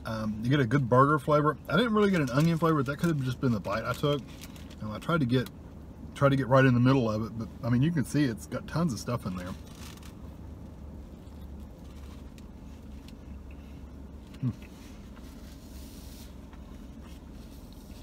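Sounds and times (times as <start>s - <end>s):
low hum in car cabin: 0.0s - 18.0s
person chewing food: 11.1s - 14.7s
person humming hmm: 14.3s - 14.7s.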